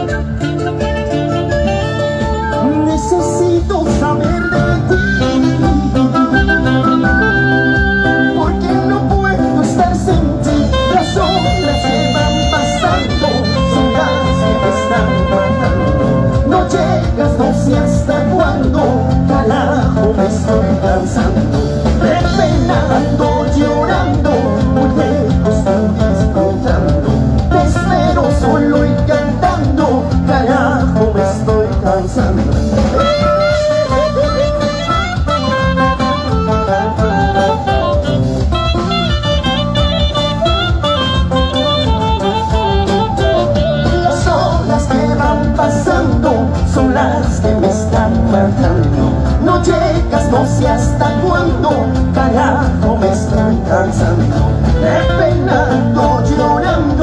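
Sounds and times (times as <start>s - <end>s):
bass and drums: 0.0s - 57.0s
guitar: 0.0s - 57.0s
live band music: 0.0s - 57.0s
group vocals: 4.8s - 34.7s, 43.6s - 57.0s.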